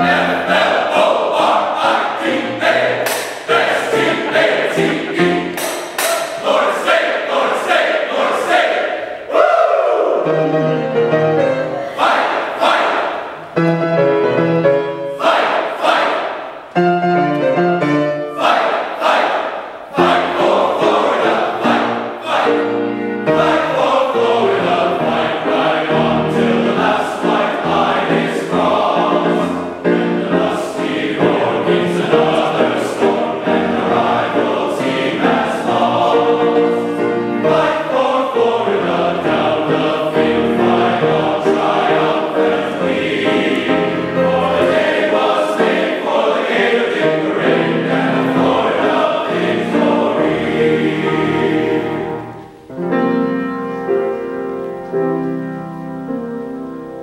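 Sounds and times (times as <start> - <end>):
men's choir singing in parts: 0.0 - 10.4, 11.8 - 13.6, 14.9 - 16.5, 18.2 - 52.5.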